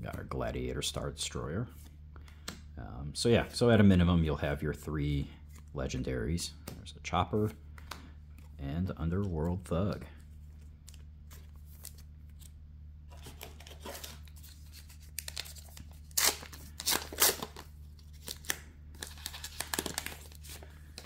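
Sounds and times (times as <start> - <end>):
steady low hum: 0.0 - 21.0
foil wrapper ripping and crinkling: 13.3 - 21.0.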